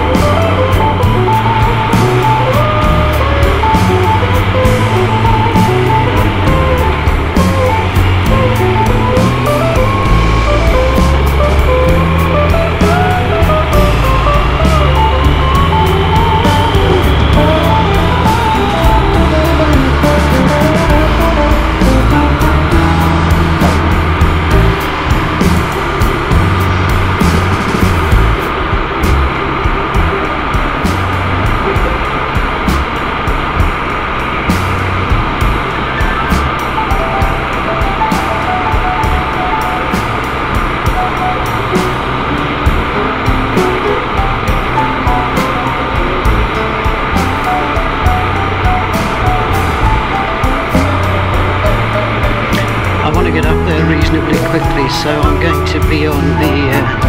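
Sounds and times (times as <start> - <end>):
background music with bass line: 0.0 - 57.0.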